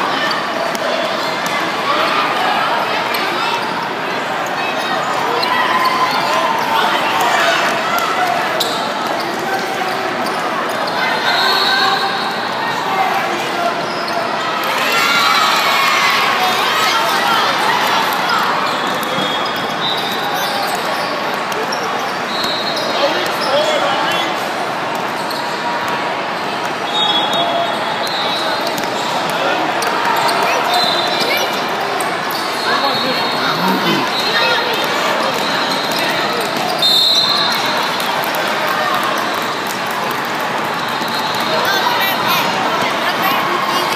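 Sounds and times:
din of voices in echoing hall: 27.6 - 43.9.

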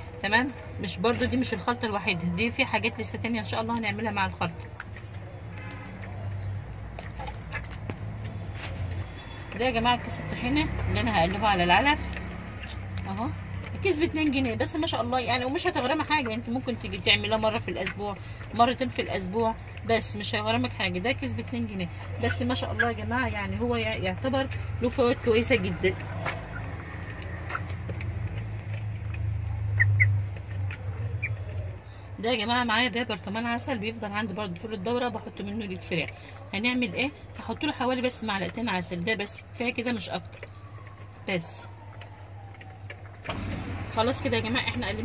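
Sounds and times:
chickens peeping: 26.0 - 28.0, 28.6 - 31.8.

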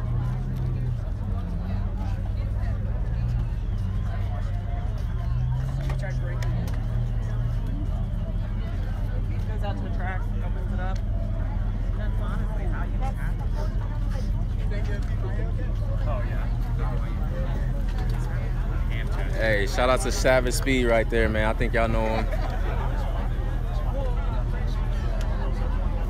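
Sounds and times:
car engine idling: 0.0 - 26.0
crowd chattering: 0.0 - 26.0.

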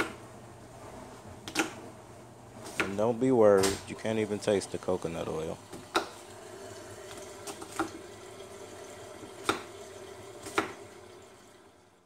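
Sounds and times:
steady low hiss: 0.2 - 5.8
knife chopping on wooden board: 2.6 - 3.0, 5.7 - 6.2, 9.4 - 9.7, 10.4 - 10.8.

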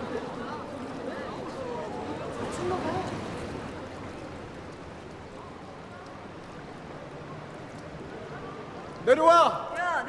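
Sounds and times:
pool water wash: 0.0 - 10.0.

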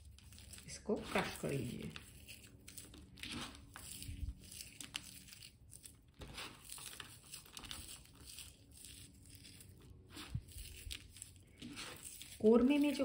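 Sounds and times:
fried onions crunching by hand: 0.0 - 13.0.

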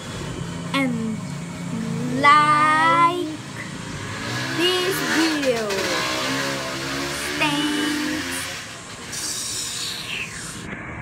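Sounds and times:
boy making vocal noises: 1.8 - 3.6, 4.6 - 8.5, 9.2 - 10.3.

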